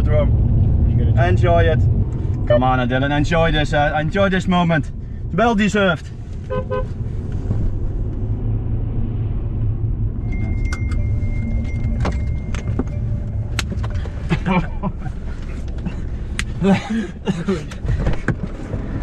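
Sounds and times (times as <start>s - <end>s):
car engine and tyres rumbling: 0.0s - 19.0s
thin steady beep: 10.2s - 13.5s.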